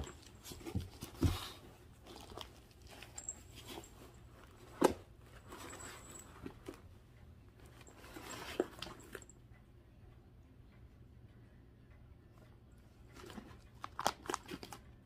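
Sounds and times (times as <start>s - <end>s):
plastic and paper packets crinkling: 13.8s - 14.8s.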